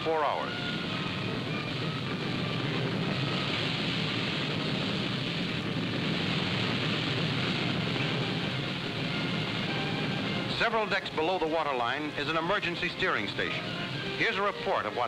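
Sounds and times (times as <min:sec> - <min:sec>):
low rumble and hiss: 0:00.0 - 0:15.0.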